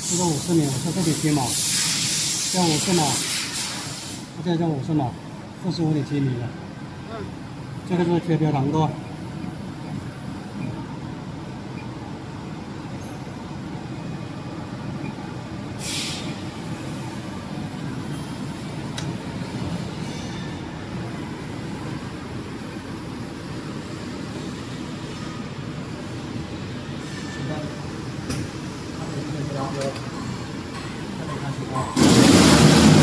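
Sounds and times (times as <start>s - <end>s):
sharp hiss of air: 0.0s - 4.5s, 15.8s - 17.3s
industrial machinery humming: 4.3s - 33.0s.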